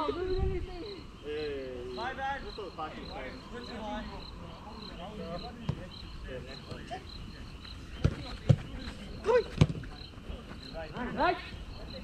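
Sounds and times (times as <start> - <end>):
distant players calling: 0.0 - 12.0
football kicks thudding: 9.5 - 9.9.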